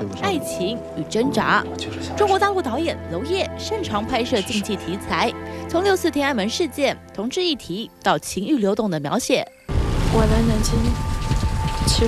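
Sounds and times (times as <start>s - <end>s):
deep rumble: 9.7s - 12.0s
rushing noise like heavy rain: 9.7s - 12.0s.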